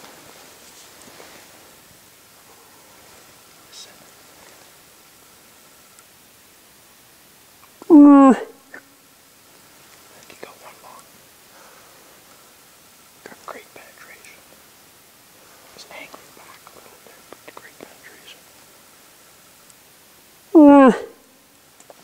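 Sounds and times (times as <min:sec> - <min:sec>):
faint whispering: 0:02.4 - 0:04.7, 0:10.0 - 0:12.3, 0:13.2 - 0:14.6, 0:15.4 - 0:18.6
moose moaning: 0:07.8 - 0:08.9, 0:20.5 - 0:21.2.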